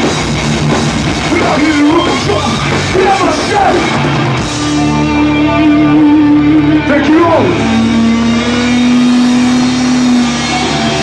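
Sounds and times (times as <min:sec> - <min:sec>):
punk band noise: 0:00.0 - 0:11.0
distorted electric guitar note: 0:00.6 - 0:11.0.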